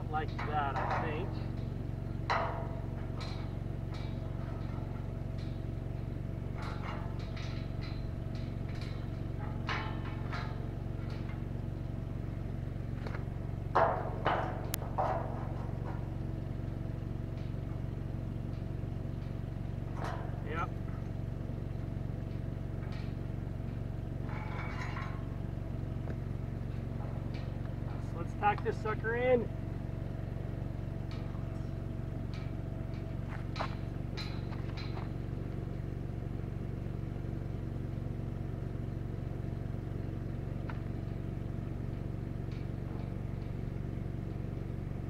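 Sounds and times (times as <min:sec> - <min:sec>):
engine droning: 0:00.0 - 0:45.0
metal knocks on steel gate: 0:00.1 - 0:11.5, 0:13.0 - 0:16.6, 0:18.6 - 0:21.1, 0:24.2 - 0:25.5.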